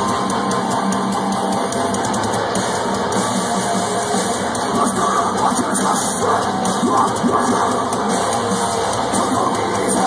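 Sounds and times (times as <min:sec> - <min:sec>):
heavy metal guitars: 0:00.0 - 0:10.0
rock drums: 0:00.0 - 0:10.0.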